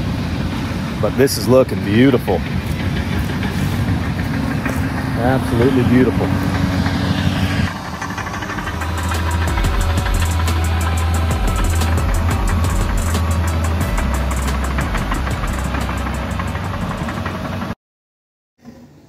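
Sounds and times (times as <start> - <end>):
diesel engine under load: 0.0 - 17.8.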